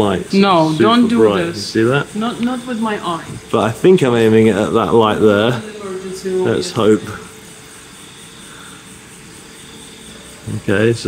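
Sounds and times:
faint hum and hiss: 0:00.0 - 0:11.0.

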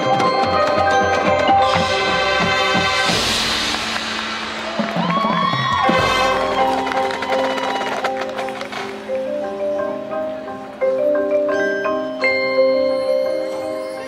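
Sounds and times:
marimbas and mallet percussion: 0:00.0 - 0:03.4, 0:05.8 - 0:14.0
marching band playing: 0:00.0 - 0:10.4.

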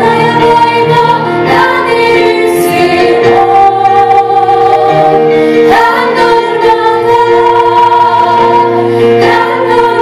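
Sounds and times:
women singing a worship song: 0:00.0 - 0:10.0.

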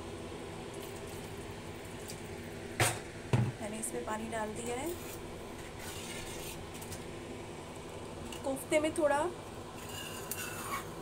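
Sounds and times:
steady low hum: 0:00.0 - 0:11.0
ladle scraping metal pan: 0:04.9 - 0:06.6, 0:09.8 - 0:11.0.

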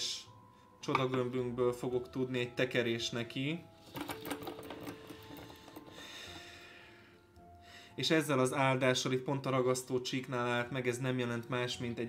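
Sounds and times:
desk globe spinning rattle: 0:03.9 - 0:05.9.

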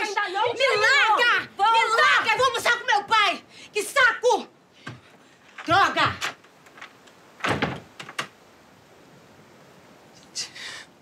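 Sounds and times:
wooden door slamming: 0:05.7 - 0:08.4.

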